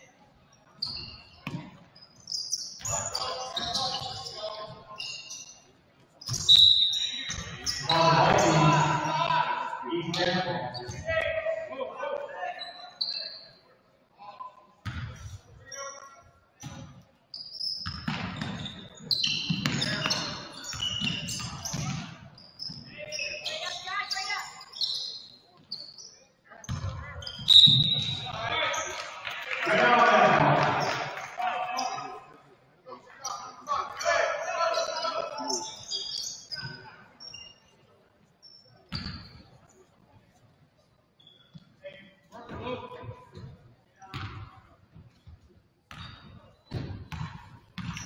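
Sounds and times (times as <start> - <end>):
sneakers squeaking: 0.5 - 9.4, 10.1 - 11.5, 12.2 - 13.6, 14.8 - 32.3, 33.2 - 40.0, 41.0 - 48.0
echoing voices: 7.6 - 12.6, 28.2 - 35.7
basketball bouncing: 14.8 - 15.1, 17.8 - 18.7, 19.5 - 22.1, 26.7 - 28.2, 44.1 - 44.4, 45.9 - 46.1, 46.7 - 48.0.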